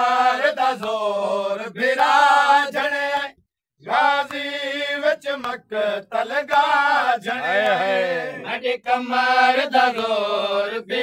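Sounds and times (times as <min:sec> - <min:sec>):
men chanting a lament: 0:00.0 - 0:11.0.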